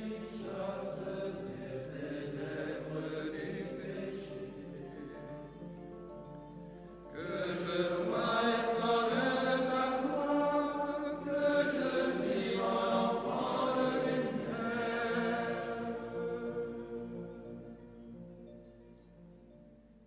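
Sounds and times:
slow sung chant: 0.0 - 18.6.

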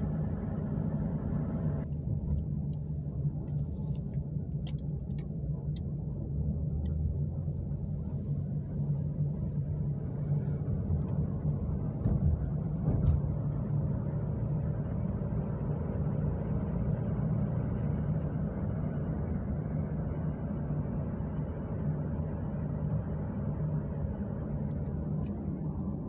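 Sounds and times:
road and engine rumble in cabin: 0.0 - 26.0.

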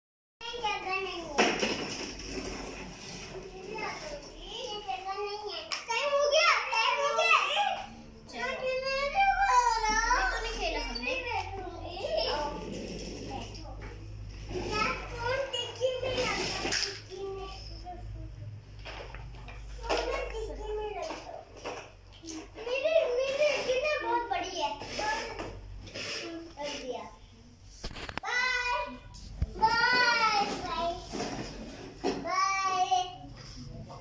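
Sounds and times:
children chattering and calling out: 0.4 - 1.4, 2.4 - 27.6, 28.2 - 34.0.

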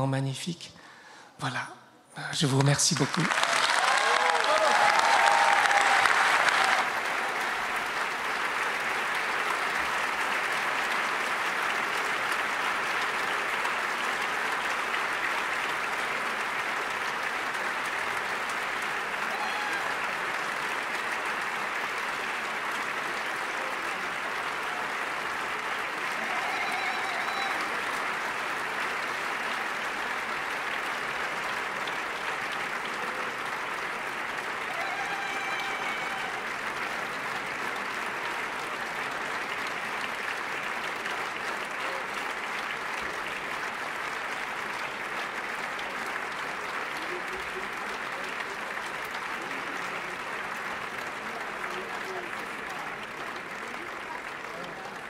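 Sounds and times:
audience applauding: 2.4 - 55.0.

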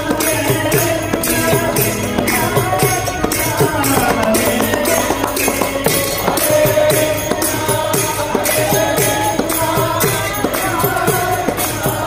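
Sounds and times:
lead singer chanting: 0.0 - 8.5
congregation singing along: 0.0 - 12.0
harmonium: 0.0 - 12.0.

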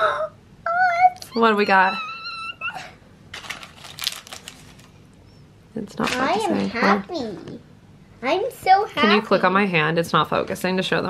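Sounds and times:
plastic toy packaging rustling: 3.3 - 5.0.

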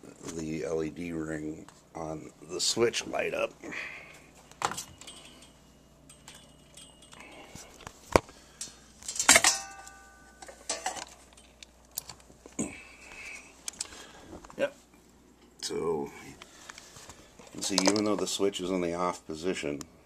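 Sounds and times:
handling clicks and metallic clinks: 4.5 - 12.3, 17.4 - 18.3
jangling clatter with ringing: 4.9 - 7.5.

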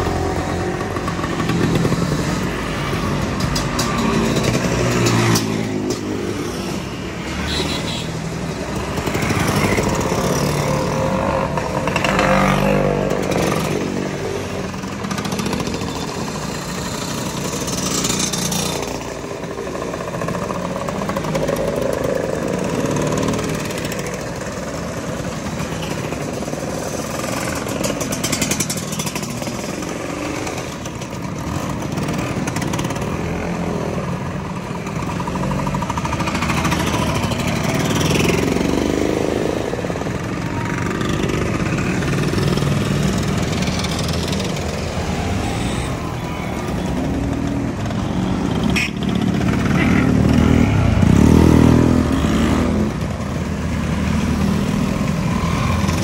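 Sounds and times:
scooters riding past: 0.0 - 56.0.

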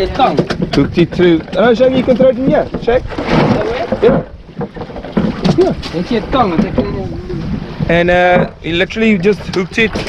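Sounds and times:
wind and water: 0.0 - 10.0
wind buffeting microphone: 0.0 - 10.0.

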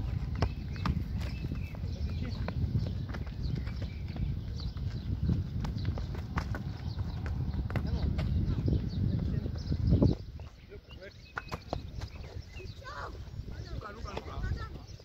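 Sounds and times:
running footsteps on asphalt: 0.0 - 15.0
wind on microphone: 0.0 - 15.0
football being kicked: 0.1 - 1.4.

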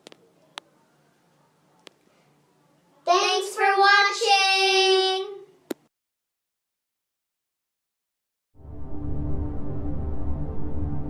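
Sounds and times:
child singing: 3.1 - 5.5.

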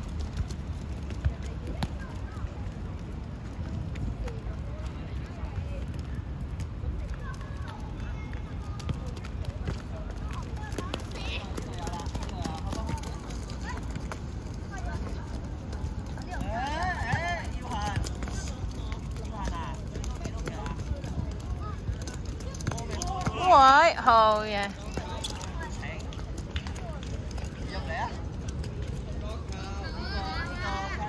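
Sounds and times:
running footsteps: 0.0 - 31.0.

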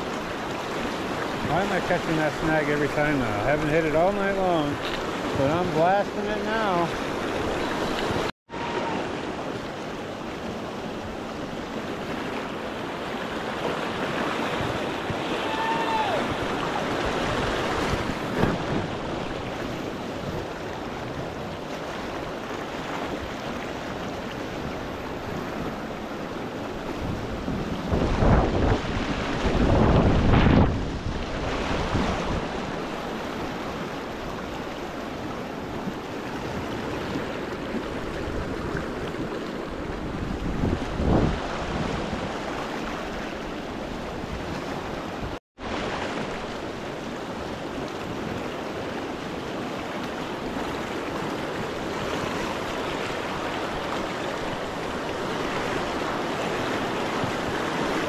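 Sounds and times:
rushing river rapids: 0.0 - 58.0.

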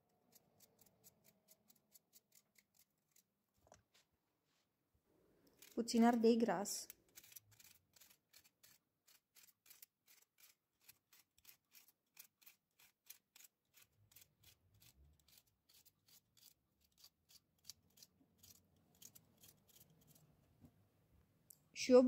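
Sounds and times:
knife slicing pepper: 5.5 - 20.2.

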